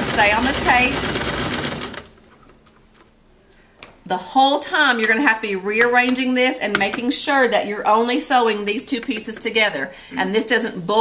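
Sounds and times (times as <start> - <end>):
sewing machine stitching: 0.0 - 2.2.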